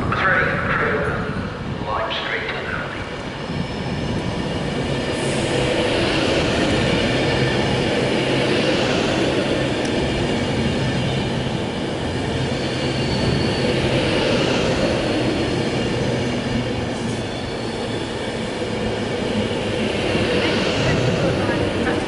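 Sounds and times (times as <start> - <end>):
electric train rumbling: 0.0 - 22.0.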